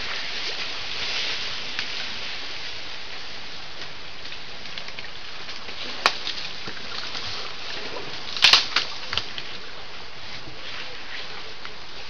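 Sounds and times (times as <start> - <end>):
steady hissing noise: 0.0 - 12.0.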